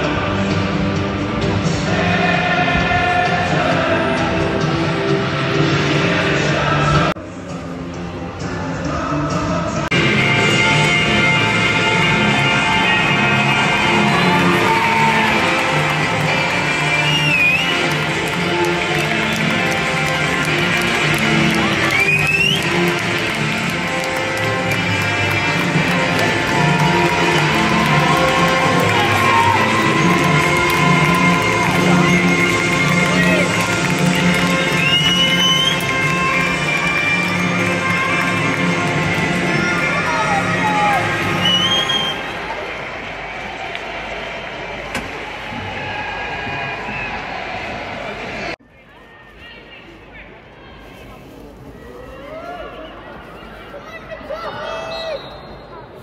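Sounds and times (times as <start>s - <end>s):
loud music over public address: 0.0s - 48.6s
crowd cheering: 10.0s - 48.6s
short rising whistles: 16.8s - 17.9s, 34.7s - 35.8s, 41.4s - 42.2s.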